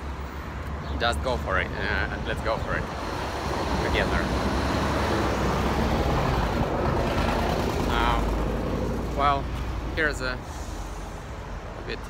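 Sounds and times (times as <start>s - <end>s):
bus passing: 0.0s - 12.0s
cars passing close by: 0.0s - 12.0s
city street traffic: 0.0s - 12.0s.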